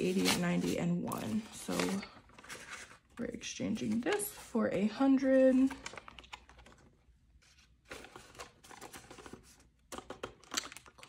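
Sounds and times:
plastic pocket and paper crinkling: 0:05.5 - 0:11.0.

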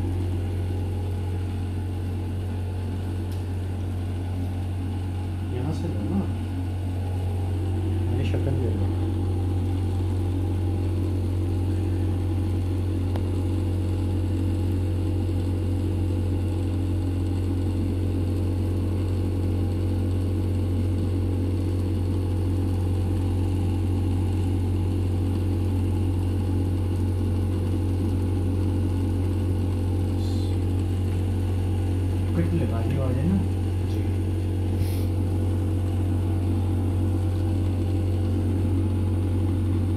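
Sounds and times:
electric motor hum: 0:00.0 - 0:39.9.

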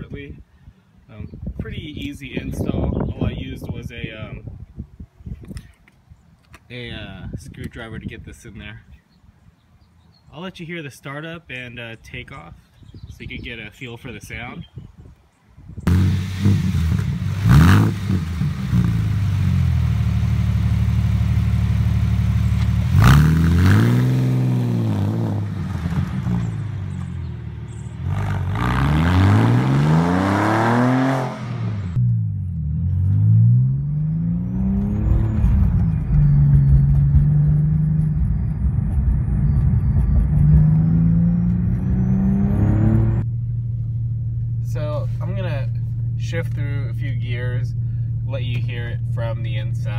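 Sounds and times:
car engine idling: 0:15.9 - 0:23.0, 0:43.2 - 0:49.9
car accelerating away: 0:15.9 - 0:43.2
car engine revving: 0:15.9 - 0:43.3
car engine starting: 0:15.9 - 0:49.9.

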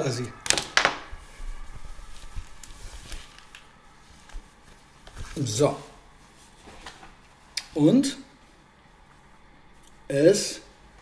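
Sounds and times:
shirt rustling: 0:01.2 - 0:07.6.

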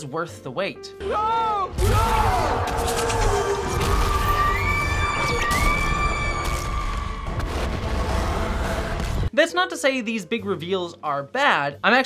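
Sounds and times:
booming hits: 0:01.8 - 0:09.3.

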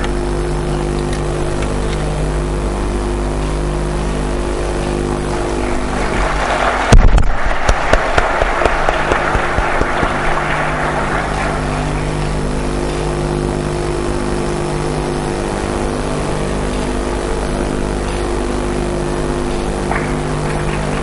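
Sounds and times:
electrical hum: 0:00.0 - 0:21.0
people clapping: 0:04.7 - 0:13.2, 0:19.5 - 0:21.0.

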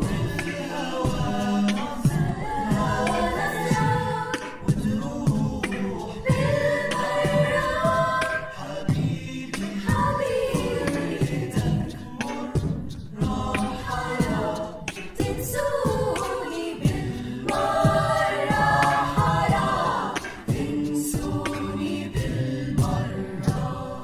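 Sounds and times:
beatboxed vocal percussion: 0:00.0 - 0:24.0
choir singing in harmony: 0:00.0 - 0:24.0.

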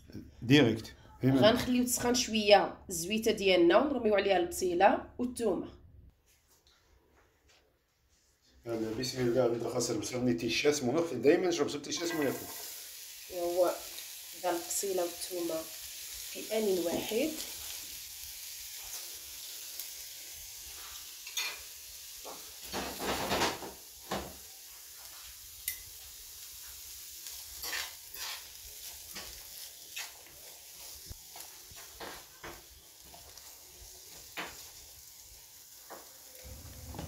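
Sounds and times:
onions sizzling in oil: 0:09.0 - 0:37.0.

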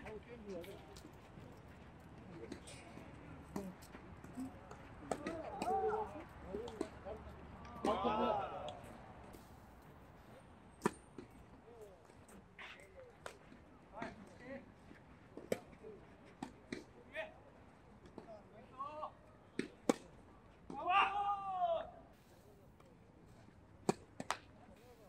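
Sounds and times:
low outdoor background: 0:00.0 - 0:25.0.

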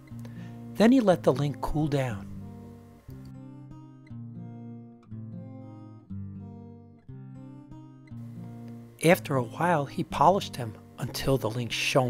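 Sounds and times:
acoustic guitar chords ringing: 0:00.0 - 0:12.0.

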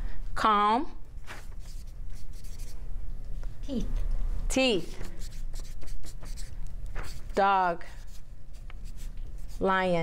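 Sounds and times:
marker scratching on paper: 0:01.2 - 0:02.8, 0:04.8 - 0:10.0
woman speaking: 0:03.6 - 0:05.0, 0:07.3 - 0:08.0, 0:09.5 - 0:10.0.

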